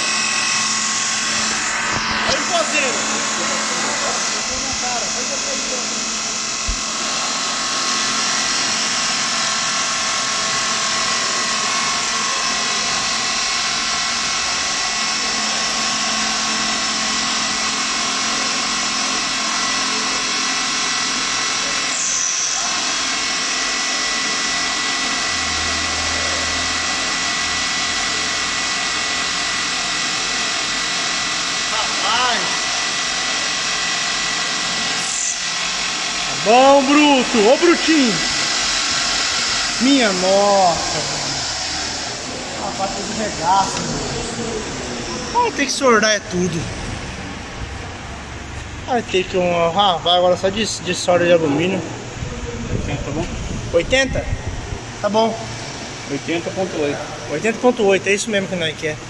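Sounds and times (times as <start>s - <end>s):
metal lathe machining whir: 0.0s - 59.0s.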